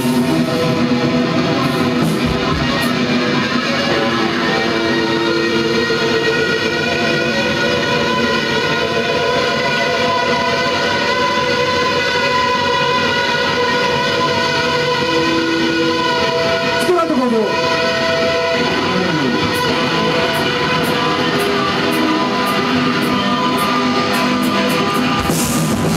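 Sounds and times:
distorted electric guitars and bass: 0.0s - 25.9s.

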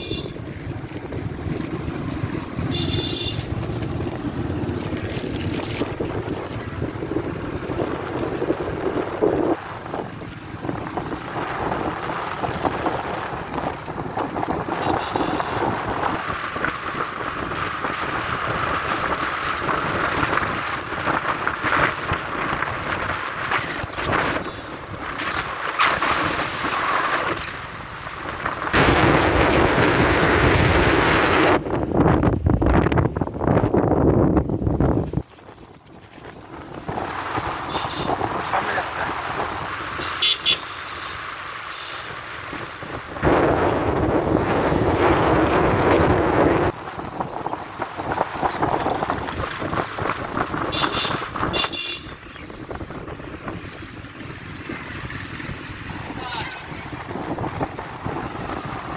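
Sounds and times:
wind buffeting microphone: 3.5s - 39.9s, 42.4s - 58.9s.

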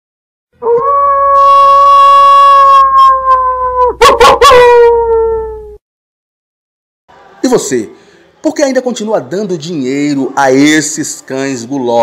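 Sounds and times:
long loud howl: 0.6s - 5.8s.

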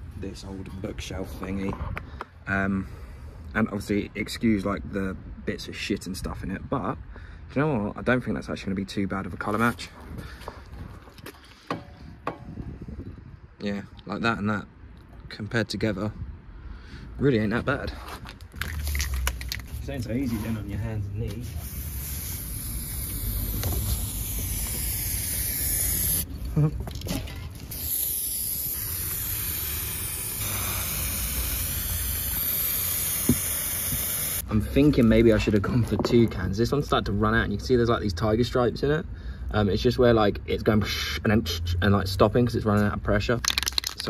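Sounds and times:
spray can hissing: 21.3s - 26.3s, 27.6s - 34.4s.

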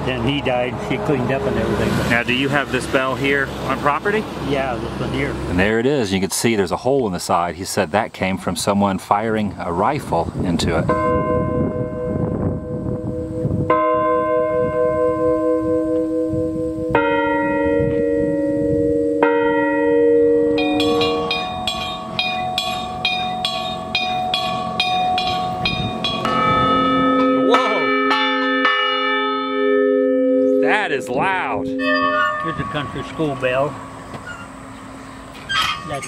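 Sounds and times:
large bells ringing: 0.0s - 5.7s, 10.8s - 36.0s
deep bell ringing: 10.9s - 36.0s
high-pitched bell struck rapidly: 20.6s - 28.4s, 30.4s - 34.1s.

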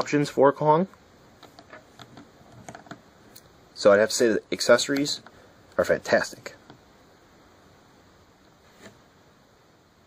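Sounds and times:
man speaking: 3.8s - 6.6s.

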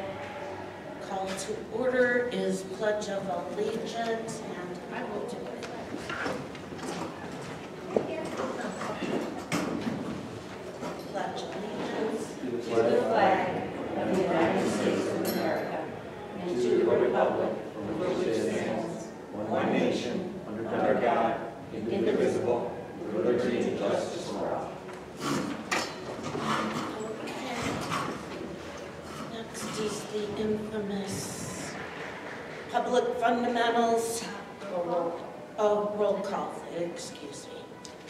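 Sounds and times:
chairs knocking and scraping: 25.2s - 30.1s.

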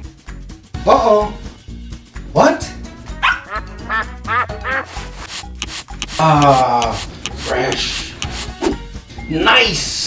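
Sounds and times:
background music: 0.0s - 10.0s
puppy barking and yipping: 3.2s - 3.8s.

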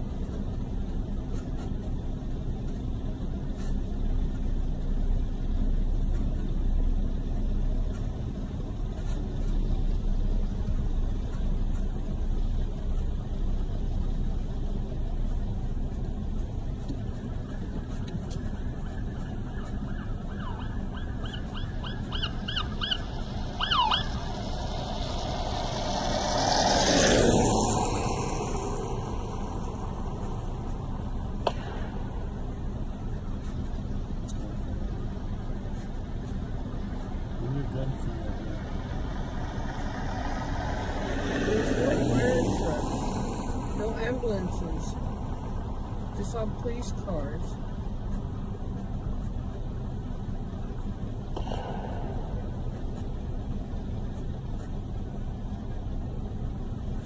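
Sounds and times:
steady low rumble: 0.0s - 57.0s
vehicle passing with a rush: 7.1s - 33.7s, 34.3s - 49.4s, 50.4s - 57.0s
emergency siren chirping: 17.2s - 31.2s, 32.1s - 34.0s.

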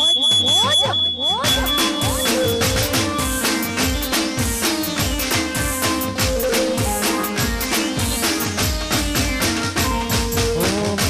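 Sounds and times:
steady high tone: 0.0s - 9.3s
drums: 0.0s - 11.0s.

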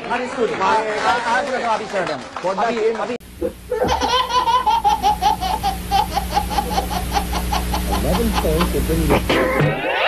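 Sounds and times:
baby laughing: 3.7s - 10.0s.

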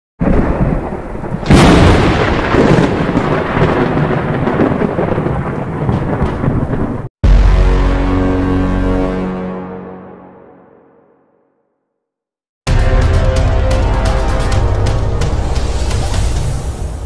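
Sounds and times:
rain: 0.2s - 7.1s
thunder crack and rumble: 0.2s - 7.1s
held musical chord: 7.2s - 11.4s.

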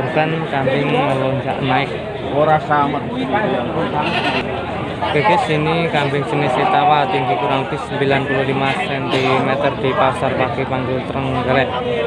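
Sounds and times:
people talking: 0.0s - 12.0s
goat bleating: 3.8s - 4.5s.

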